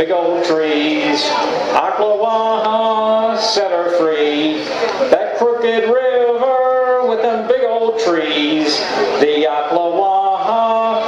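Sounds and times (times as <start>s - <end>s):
man singing folk song: 0.0s - 11.0s.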